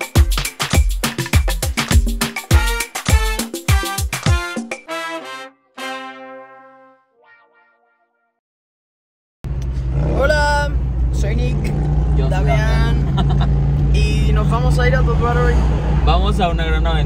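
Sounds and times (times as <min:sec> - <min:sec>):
road noise: 0:09.5 - 0:17.0.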